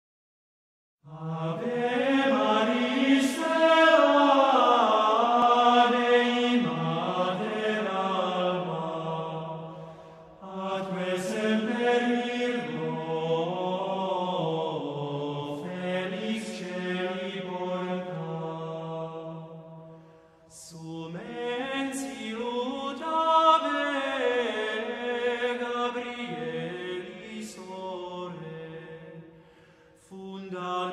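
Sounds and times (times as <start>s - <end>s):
male choir chanting: 1.1s - 19.8s, 20.6s - 29.2s, 30.1s - 30.9s.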